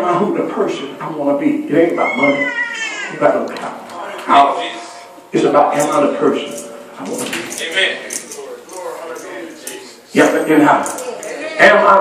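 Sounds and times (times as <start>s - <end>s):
man preaching: 0.0s - 12.0s.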